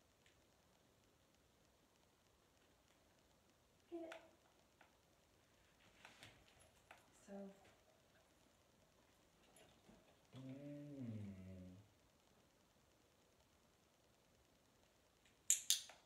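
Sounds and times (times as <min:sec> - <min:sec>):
dog low drawn-out vocalization: 0:09.9 - 0:11.9
sharp clicks: 0:15.2 - 0:16.0.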